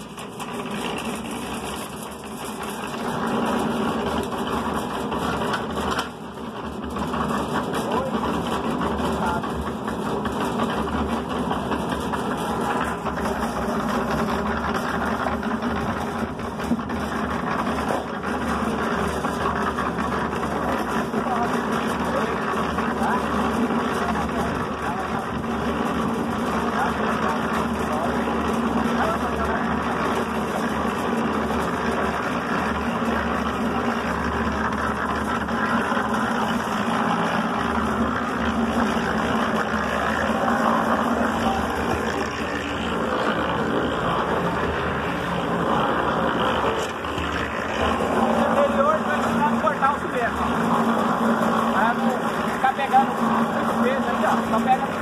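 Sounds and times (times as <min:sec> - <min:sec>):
concrete mixer churning mortar: 0:00.0 - 0:55.0.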